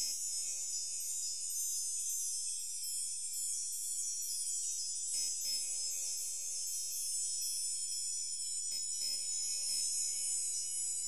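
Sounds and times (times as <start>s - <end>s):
tinkling chime-like shimmer: 0.0s - 8.7s.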